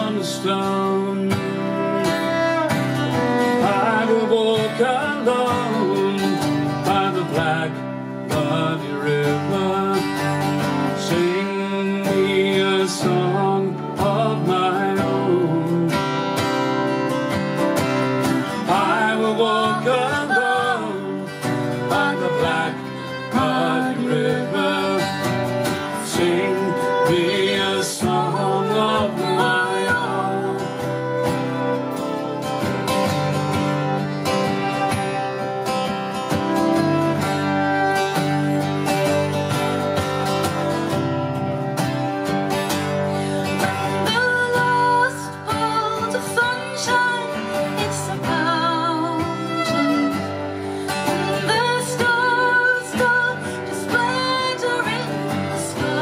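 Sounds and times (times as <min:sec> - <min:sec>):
acoustic guitars strumming: 0:00.0 - 0:56.0
fiddle melody: 0:00.0 - 0:56.0.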